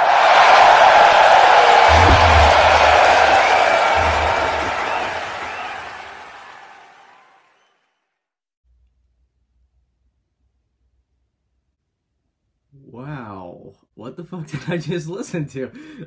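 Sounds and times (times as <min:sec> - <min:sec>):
crowd cheering and applauding: 0:00.0 - 0:08.0
low booms: 0:01.8 - 0:05.9.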